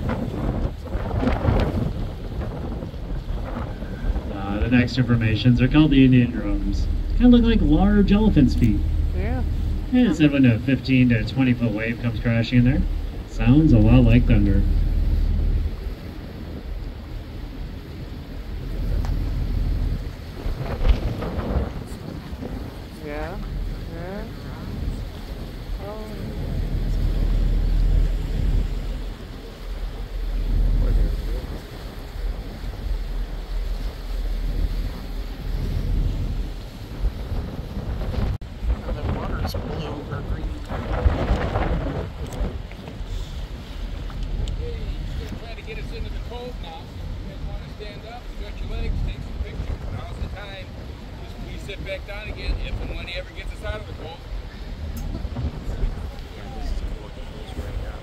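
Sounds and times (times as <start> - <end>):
boat engine and water rumble: 0.0 - 58.0
wind buffeting microphone: 0.0 - 58.0.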